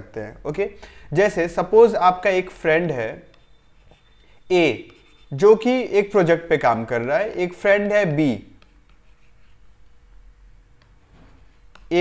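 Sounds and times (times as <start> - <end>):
man speaking: 0.0 - 3.3, 4.5 - 8.6
pen drawing on a whiteboard: 1.2 - 12.0
thin high whine: 2.0 - 6.5.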